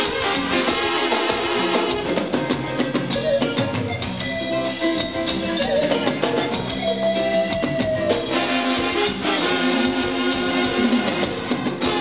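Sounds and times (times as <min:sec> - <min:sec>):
brass playing held notes: 0:00.0 - 0:03.6, 0:08.1 - 0:12.0
steady drum beat: 0:00.0 - 0:12.0.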